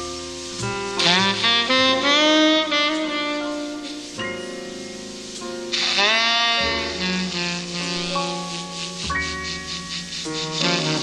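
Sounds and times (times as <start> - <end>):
tenor saxophone jazz ballad: 0.1 - 9.0, 10.4 - 11.0.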